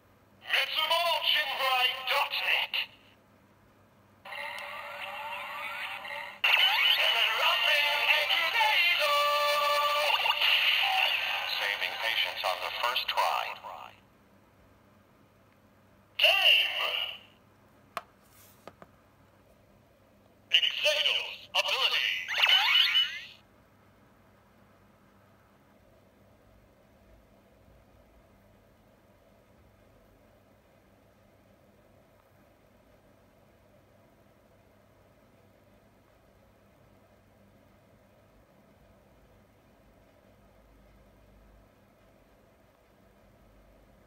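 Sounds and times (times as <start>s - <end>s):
synthesized jingle with sung voice: 4.3s - 12.4s
electronic toy chirpy tones: 22.3s - 23.3s.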